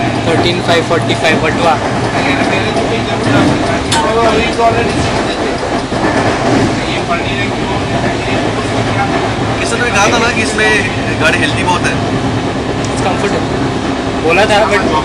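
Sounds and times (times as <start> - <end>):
murmur of passengers' voices: 0.0 - 15.0
rumble of train wheels on rail: 0.0 - 15.0.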